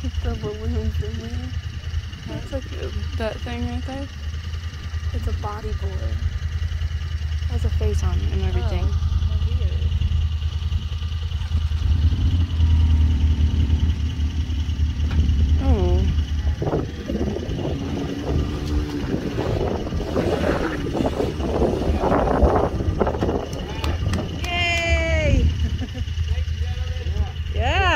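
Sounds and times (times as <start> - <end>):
voices calling out: 0.0 - 14.2, 15.4 - 27.9
off-road vehicle engine rumbling: 0.0 - 27.9
long falling shout: 23.6 - 25.5.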